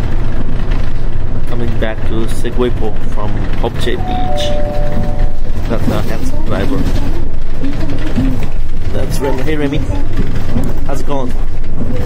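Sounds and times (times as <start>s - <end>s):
bus drivetrain and road rumble: 0.0s - 12.0s.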